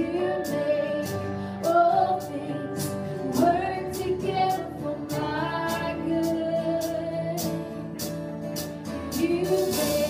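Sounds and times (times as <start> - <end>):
women singing: 0.0 - 7.9, 9.0 - 10.0
electric guitar: 0.0 - 10.0
keyboard: 0.0 - 10.0
drum and cymbal beat: 6.2 - 10.0.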